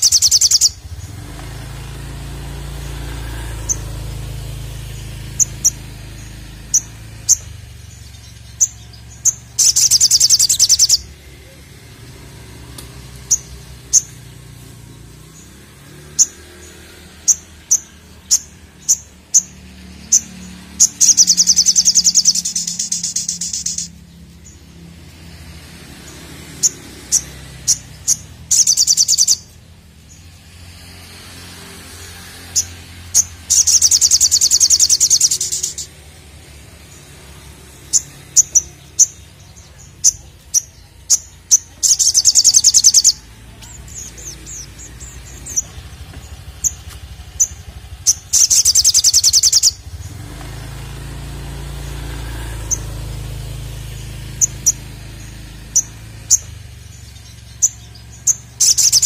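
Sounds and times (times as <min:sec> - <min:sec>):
bird high chirps: 0:00.0 - 0:30.9, 0:31.8 - 0:59.0
bird buzzing trills: 0:00.0 - 0:59.0.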